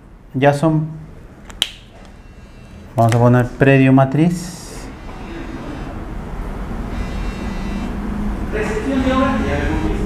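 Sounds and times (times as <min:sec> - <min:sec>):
loud snap: 0:01.5 - 0:02.0.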